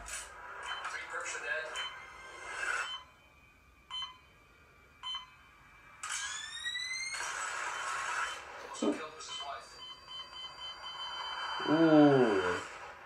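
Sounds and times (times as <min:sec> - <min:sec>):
rising whine: 0:10.5 - 0:13.0.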